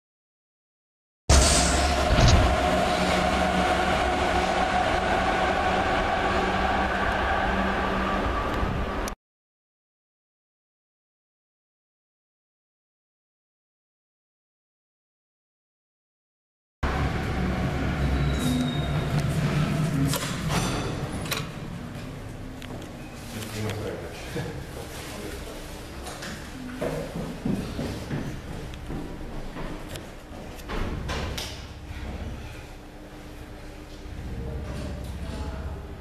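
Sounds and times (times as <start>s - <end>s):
elevator hum and rumble: 1.3s - 9.2s, 16.8s - 36.0s
metro train rolling on viaduct: 1.3s - 9.2s, 16.8s - 22.4s
train whine: 1.3s - 9.2s, 16.8s - 24.7s.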